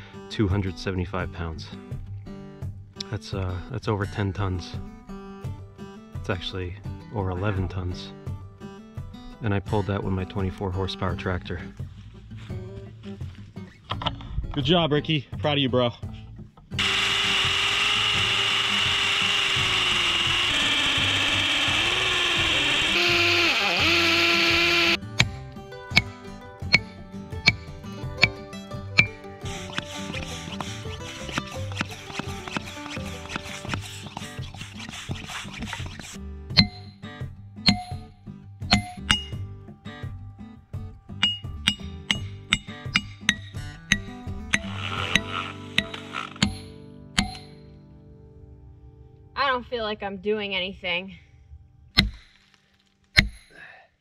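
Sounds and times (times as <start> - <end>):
loud machine noise: 16.8 - 25.0.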